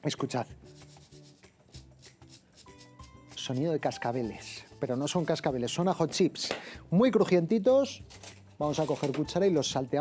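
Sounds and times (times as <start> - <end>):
faint background music: 0.0 - 10.0
fried garlic chips rattling in sieve: 0.8 - 5.4.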